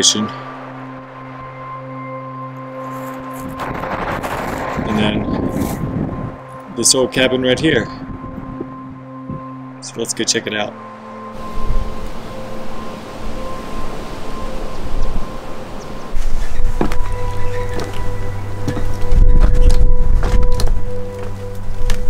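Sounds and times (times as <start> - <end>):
low music drone: 0.0 - 22.0
low rumble: 3.5 - 9.5, 11.4 - 22.0
footsteps on creaky wooden floorboards: 16.2 - 22.0.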